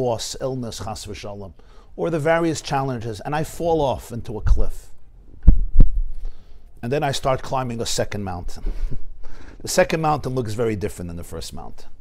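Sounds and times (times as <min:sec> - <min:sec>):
dull low thumps: 0:05.3 - 0:06.4.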